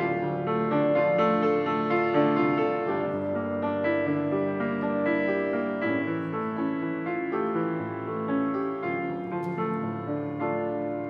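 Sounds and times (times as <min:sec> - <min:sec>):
grand piano playing: 0:00.0 - 0:11.0.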